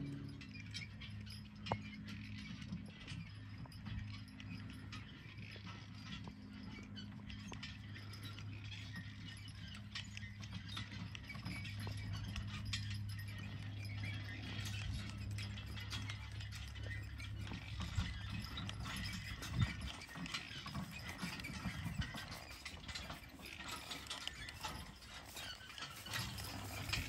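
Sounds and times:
low steady hum: 0.0s - 27.0s
harness hardware clinking: 0.1s - 27.0s.

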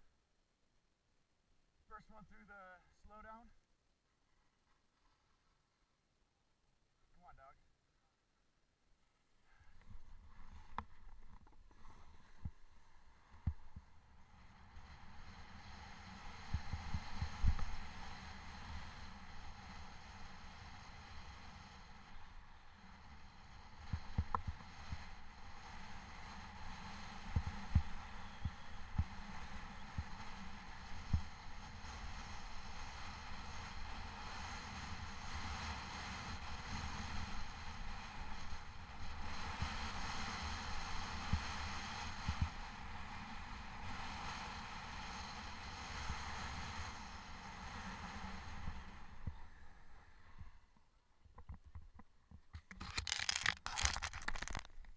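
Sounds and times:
wind on microphone: 14.5s - 22.3s, 23.2s - 50.5s
snowboard hissing on snow: 23.2s - 50.2s.

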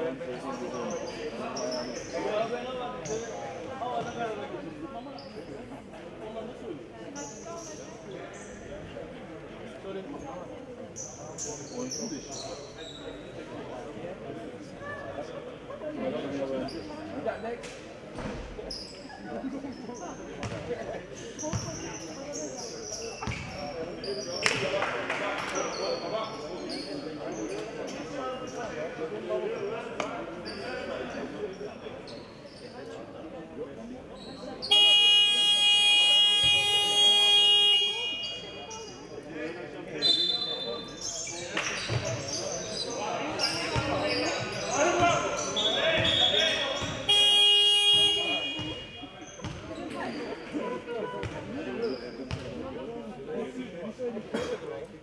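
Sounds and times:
voices echoing in gym: 0.0s - 55.0s
basketball bouncing on wooden court: 20.4s - 20.7s, 49.4s - 49.6s, 52.3s - 52.5s
arena electric horn blast: 34.7s - 38.3s, 47.1s - 49.0s.

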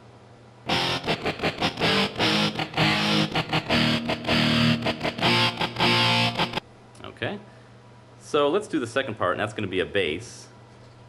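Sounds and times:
distorted electric guitar power chords: 0.7s - 6.6s.

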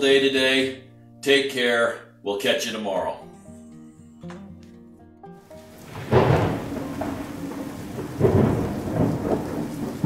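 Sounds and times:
steady rain: 5.4s - 10.0s
thunder rolling: 5.8s - 10.0s.

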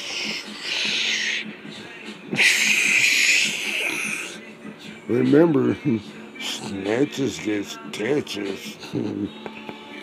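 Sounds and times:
man's stifled hissing laugh: 2.3s - 4.4s.

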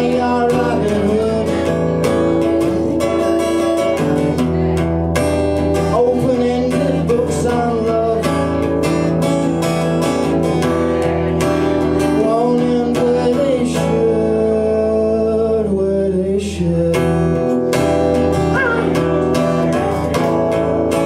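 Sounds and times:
man singing: 0.0s - 5.0s, 5.6s - 21.0s
strummed acoustic guitar: 0.0s - 21.0s.

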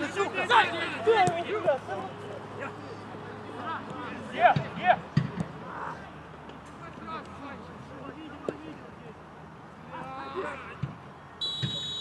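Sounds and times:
men calling out: 0.0s - 1.9s.

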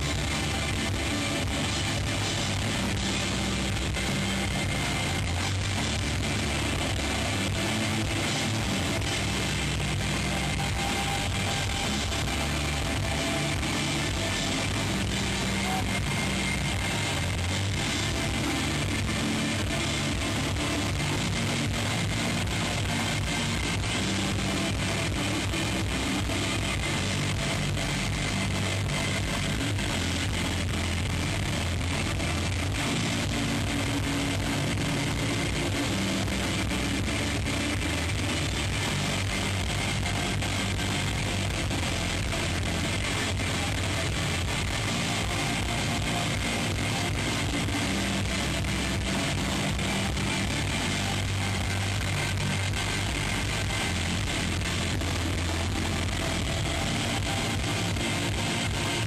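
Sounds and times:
bass line: 0.0s - 59.0s.

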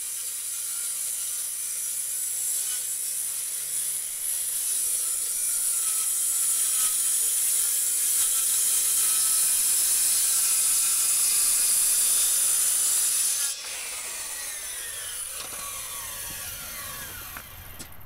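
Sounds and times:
circular saw cutting wood: 0.0s - 18.0s
saw blade spinning down: 12.0s - 18.0s.

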